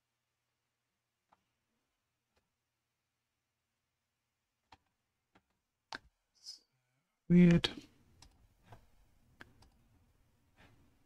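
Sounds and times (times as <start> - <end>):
computer mouse clicks: 8.2 - 9.8.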